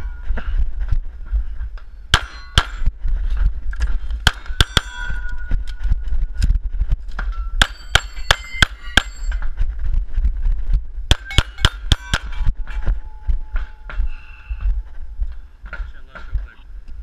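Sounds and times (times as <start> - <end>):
steel targets ringing: 2.1 - 2.9, 4.3 - 5.7, 7.3 - 9.5, 11.1 - 14.3.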